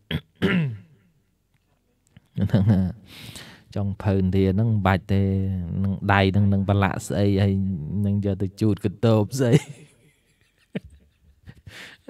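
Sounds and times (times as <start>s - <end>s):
man clearing his throat: 0.1s - 1.0s.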